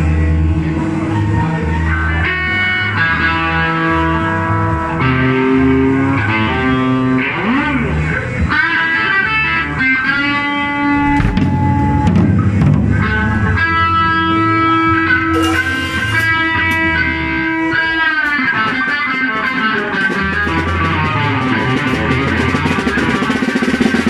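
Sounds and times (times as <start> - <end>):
bass guitar: 0.0 - 24.0
drums: 0.0 - 24.0
electric guitar lead notes: 0.0 - 24.0.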